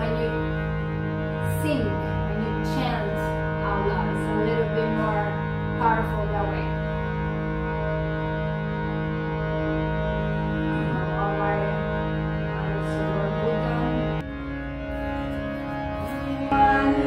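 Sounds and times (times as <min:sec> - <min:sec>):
harmonium chord drone: 0:00.0 - 0:17.0.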